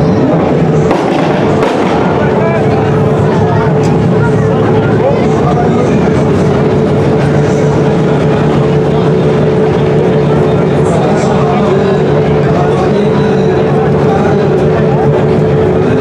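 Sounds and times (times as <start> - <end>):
car engine idling: 0.0 - 16.0
people talking: 0.0 - 16.0.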